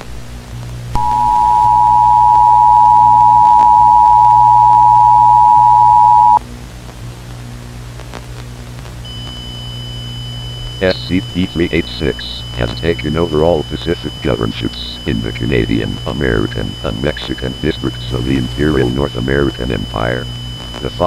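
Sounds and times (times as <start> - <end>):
steady low hum: 0.0 - 21.0
dual-tone alert signal: 1.0 - 6.4, 10.6 - 21.0
faint high steady tone: 1.0 - 6.4, 9.1 - 21.0.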